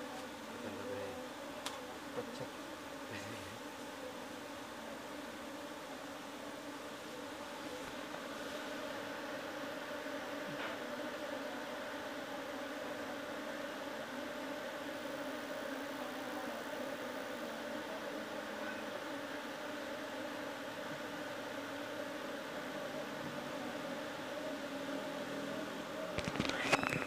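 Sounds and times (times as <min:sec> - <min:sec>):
bees buzzing: 0:00.0 - 0:27.0.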